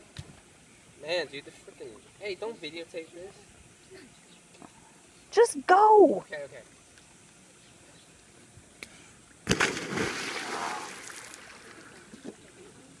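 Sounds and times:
loud splash into pool: 9.4s - 12.0s
water sloshing: 9.5s - 12.4s.

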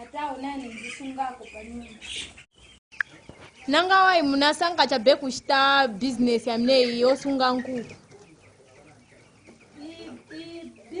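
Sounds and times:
young chickens peeping: 0.0s - 11.0s.

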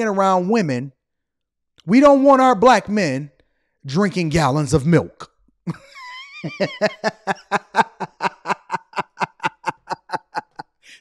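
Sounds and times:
man laughing: 5.7s - 11.0s.

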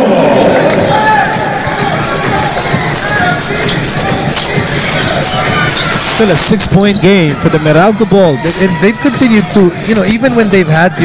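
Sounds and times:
arena crowd noise: 0.0s - 11.0s
music playing: 0.0s - 11.0s.

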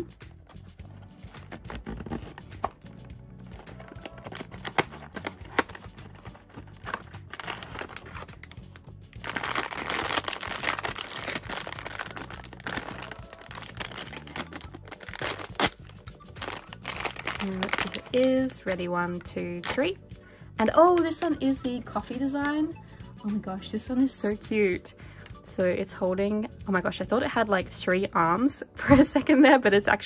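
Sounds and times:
soft background music: 0.0s - 30.0s
foil bag crinkling: 3.6s - 8.6s, 9.2s - 18.9s.

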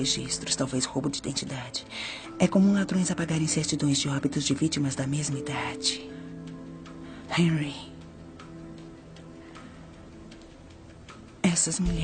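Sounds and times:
soft background score: 0.0s - 12.0s
faint clicks: 7.9s - 11.9s.

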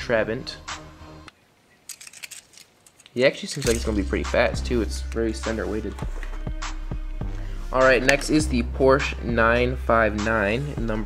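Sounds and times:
background music: 0.0s - 1.3s, 3.6s - 11.0s
toy car clicking and rattling: 1.9s - 3.8s.

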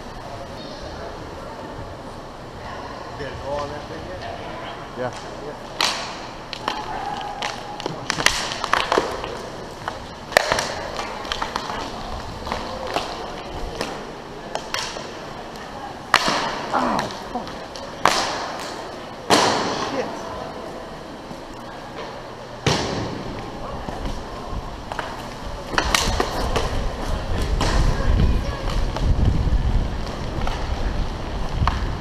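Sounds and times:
hockey sticks clacking: 5.1s - 20.0s, 24.9s - 27.9s
inline skate wheels rolling: 5.2s - 19.8s, 20.4s - 32.0s.

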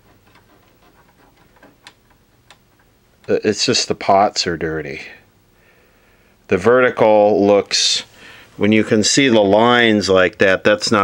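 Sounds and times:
tv knobs ticking and clicking: 0.0s - 3.5s.

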